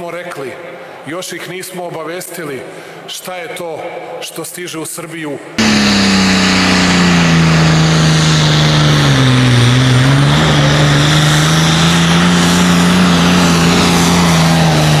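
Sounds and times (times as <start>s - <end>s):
tractor diesel engine under load: 5.6s - 15.0s.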